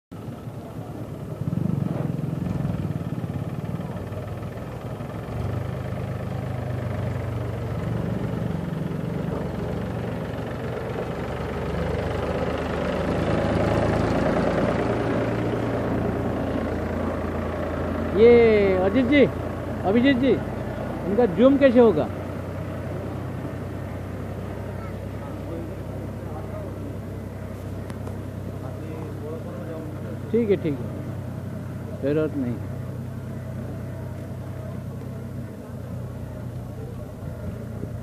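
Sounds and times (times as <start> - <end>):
tractor engine running: 0.1 - 38.0.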